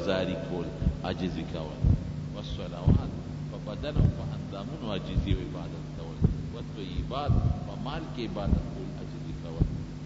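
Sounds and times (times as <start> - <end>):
man speaking: 0.0 - 9.9
steady low hum: 0.0 - 10.0.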